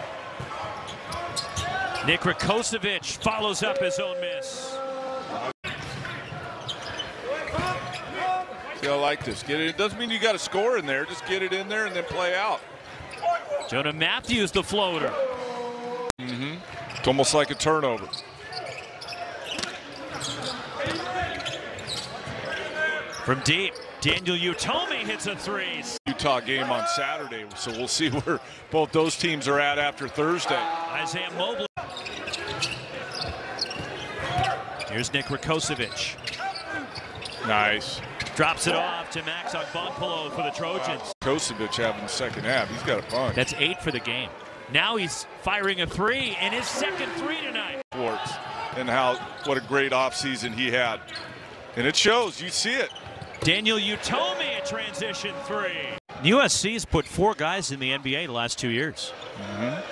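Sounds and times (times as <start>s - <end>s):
arena crowd hum: 0.0s - 59.9s.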